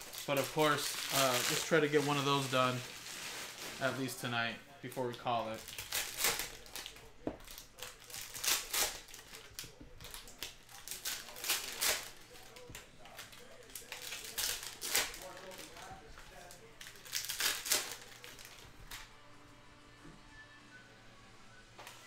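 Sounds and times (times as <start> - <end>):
foil wrappers crinkling and tearing: 0.0 - 19.1.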